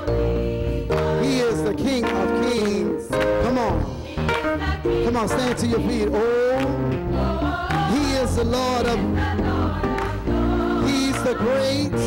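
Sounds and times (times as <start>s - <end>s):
choir singing: 0.0s - 2.6s, 3.4s - 12.0s
steady bass: 0.0s - 12.0s
band playing: 0.8s - 12.0s
man singing solo: 10.8s - 12.0s.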